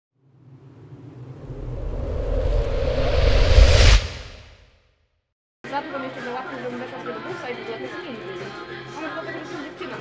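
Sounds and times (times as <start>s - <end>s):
low rumbling sound effect: 0.2s - 4.6s.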